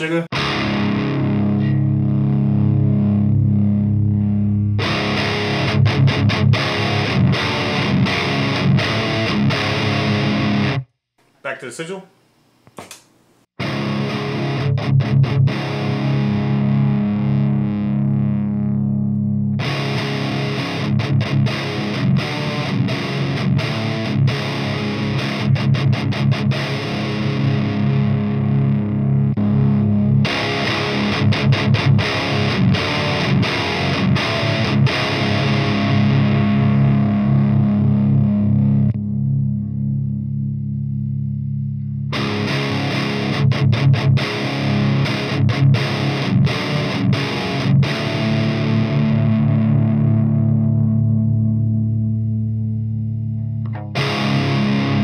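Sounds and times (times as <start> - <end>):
distorted electric guitar riffing: 0.0 - 10.8, 13.6 - 55.0.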